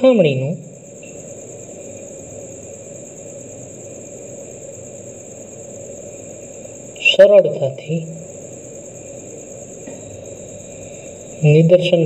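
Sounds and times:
high-pitched whine: 0.0 - 12.0
steady background noise: 0.0 - 12.0.

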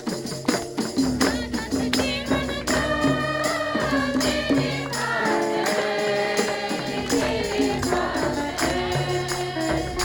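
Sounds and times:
percussion beat: 0.0 - 10.0
women singing a hymn: 1.2 - 10.0.

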